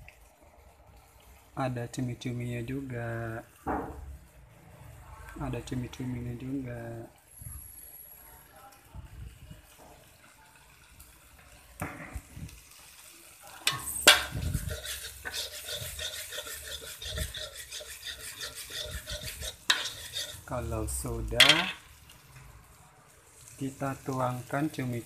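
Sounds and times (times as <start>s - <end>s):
paste sizzling in a pan: 0.0s - 25.0s
spatula scraping a pan: 13.6s - 20.7s.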